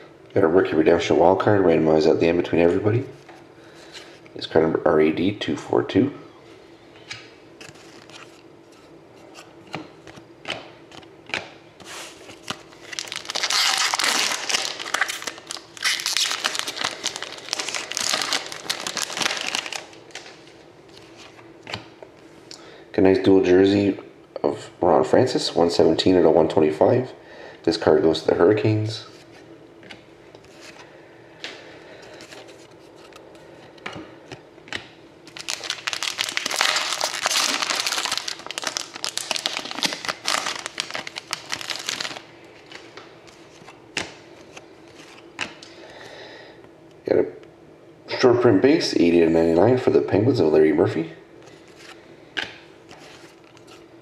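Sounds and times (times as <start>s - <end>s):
wrapper being torn and crinkled: 12.5s - 20.4s, 35.3s - 42.8s.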